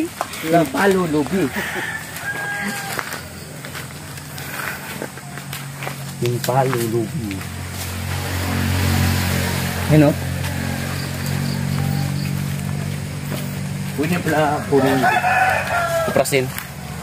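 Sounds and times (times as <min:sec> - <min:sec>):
rooster crowing: 0:00.5 - 0:04.9, 0:10.2 - 0:16.6.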